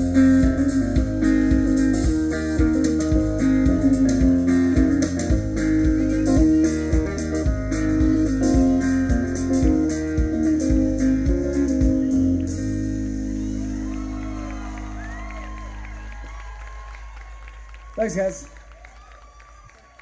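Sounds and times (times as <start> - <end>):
acoustic guitar strumming: 0.0 - 15.3
steady beat: 0.0 - 16.4.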